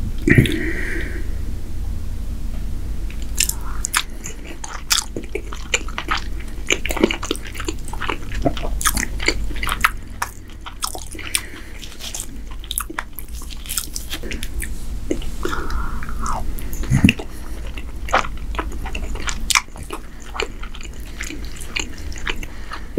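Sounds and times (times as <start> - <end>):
person chewing with wet mouth clicks: 3.1 - 22.9.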